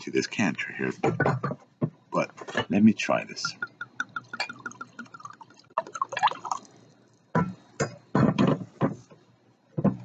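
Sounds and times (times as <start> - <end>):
wine glugging into a glass: 3.5 - 6.7.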